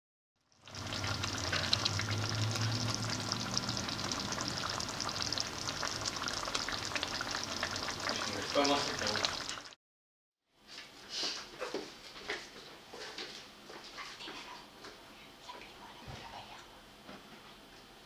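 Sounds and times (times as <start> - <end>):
stew sizzling in a pan: 0.4 - 9.8.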